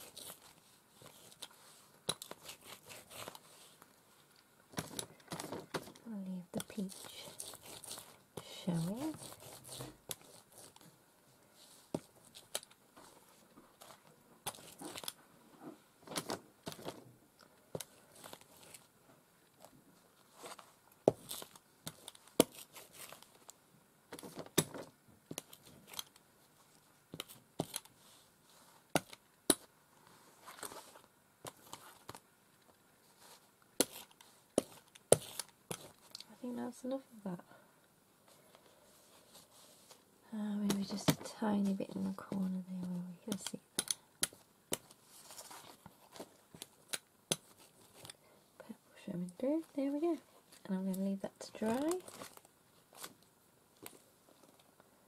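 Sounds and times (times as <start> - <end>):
fabric crinkling: 11.6 - 17.0, 51.4 - 54.7.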